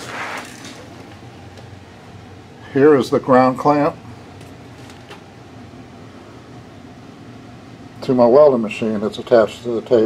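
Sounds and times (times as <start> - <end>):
faint low hum with hiss: 0.0 - 10.0.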